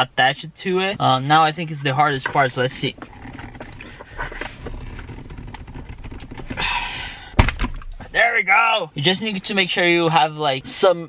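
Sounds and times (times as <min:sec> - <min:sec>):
plastic shift knob clicking and rubbing: 0:02.1 - 0:06.6.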